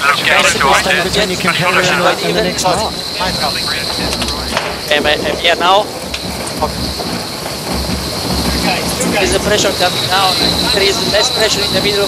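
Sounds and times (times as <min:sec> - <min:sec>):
faint high whine: 0:00.0 - 0:06.9
wind buffeting: 0:00.0 - 0:12.0.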